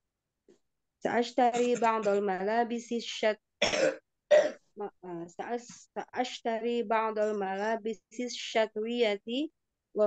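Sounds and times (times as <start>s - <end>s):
person reading aloud: 1.1s - 3.4s, 4.8s - 10.0s
person coughing: 1.5s - 2.2s, 3.6s - 4.6s.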